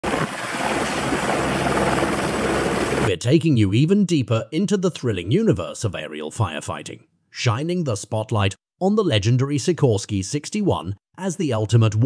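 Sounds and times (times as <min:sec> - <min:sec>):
helicopter rotor and engine: 0:00.0 - 0:03.1.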